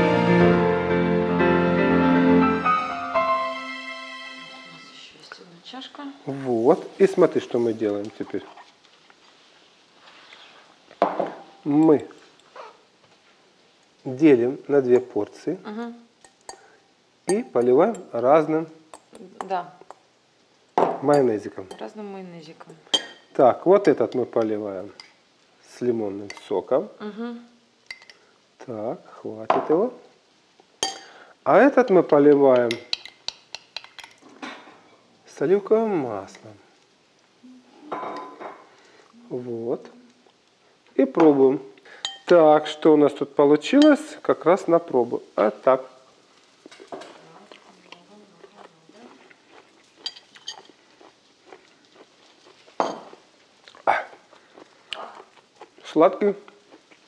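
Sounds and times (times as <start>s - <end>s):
glass ringing note: 2.6s - 5.2s
glass bowl handling noises: 50.0s - 50.8s, 52.8s - 53.2s.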